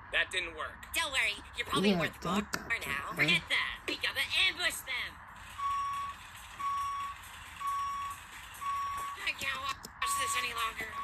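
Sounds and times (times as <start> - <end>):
reversing alarm beeps: 5.6 - 9.3, 10.1 - 11.0.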